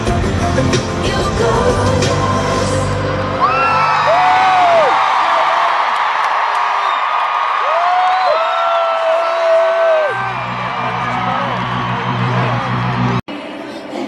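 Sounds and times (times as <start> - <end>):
pop concert music with heavy bass: 0.0 - 5.2, 9.3 - 14.0
crowd cheering and screaming: 3.1 - 13.2.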